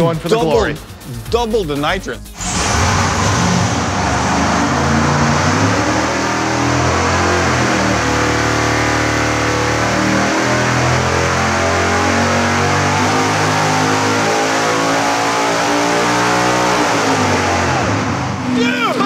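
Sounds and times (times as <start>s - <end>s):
engine revving at full throttle: 2.4s - 18.7s.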